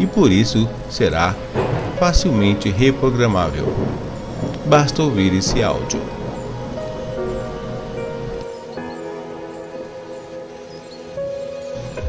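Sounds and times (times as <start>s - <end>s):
falling rain: 0.0s - 12.0s
sustained synthesizer tones: 0.0s - 12.0s
low rumble: 0.2s - 8.7s.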